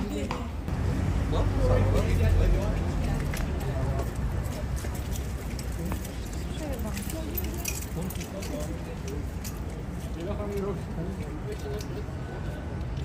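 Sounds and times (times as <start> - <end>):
faint talk of bystanders: 0.0 - 13.0.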